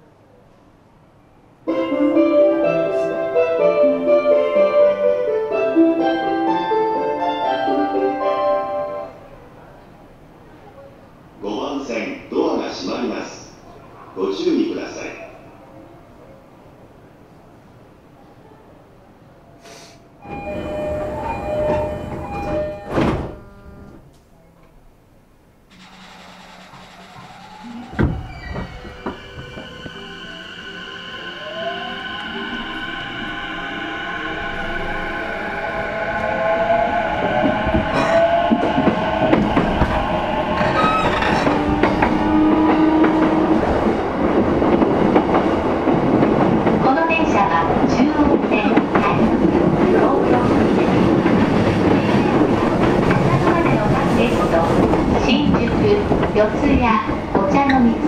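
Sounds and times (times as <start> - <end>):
train running noise: 20.2 - 24.2, 25.5 - 58.0
train thud: 21.4 - 23.6, 25.7 - 30.2, 37.4 - 47.0
train motors whining: 25.6 - 43.9
rail-joint clicks: 25.7 - 30.1.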